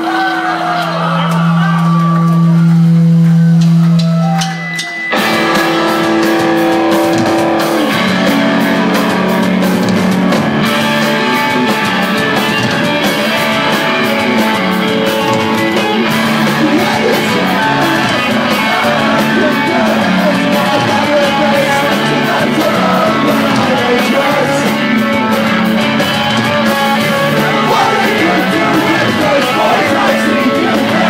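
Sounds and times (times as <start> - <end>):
live rock band: 1.0 - 31.0.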